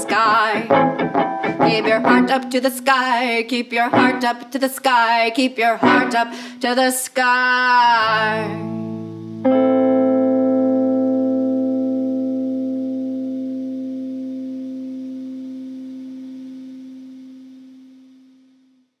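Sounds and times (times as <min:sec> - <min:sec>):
guitar chord ringing: 0:00.0 - 0:02.9, 0:03.9 - 0:04.3, 0:05.8 - 0:06.6, 0:08.1 - 0:19.0.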